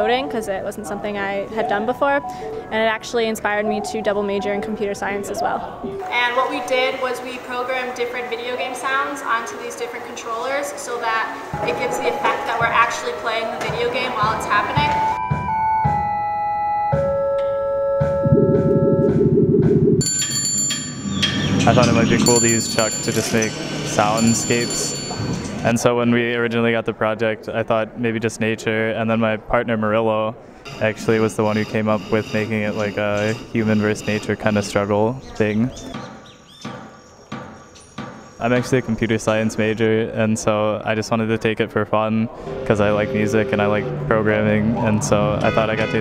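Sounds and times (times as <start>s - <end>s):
electronic video game tones: 17.8s - 20.0s
low rapid buzz: 18.0s - 20.1s
bird chirps: 33.4s - 38.4s.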